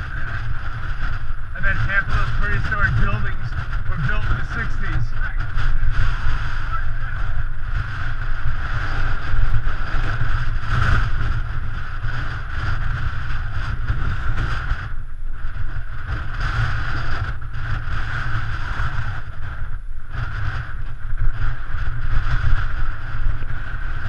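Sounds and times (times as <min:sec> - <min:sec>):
wind rushing over microphone: 0:00.0 - 0:24.0.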